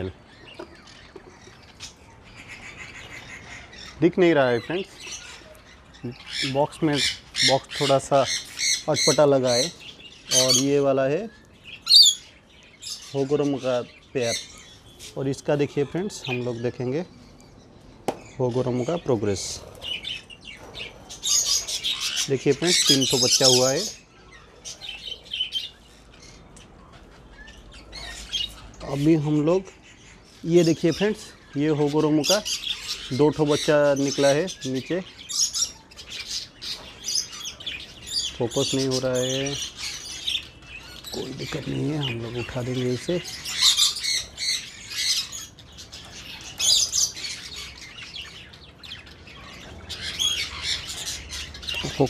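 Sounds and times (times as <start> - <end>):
budgerigars chirping: 0.0 - 52.0.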